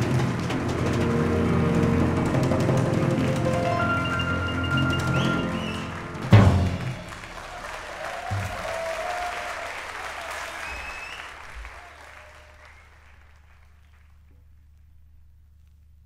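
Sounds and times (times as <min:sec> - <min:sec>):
jazz piano trio playing: 0:00.0 - 0:07.0
audience applause: 0:00.0 - 0:14.3
whistles from audience: 0:03.4 - 0:14.1.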